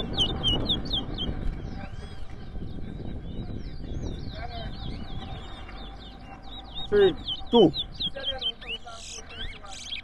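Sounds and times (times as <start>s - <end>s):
finch singing: 0.0s - 10.0s.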